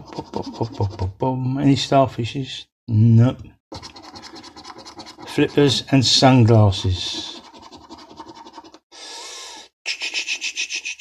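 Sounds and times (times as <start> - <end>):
coin scratching a scratchcard: 3.7 - 8.8.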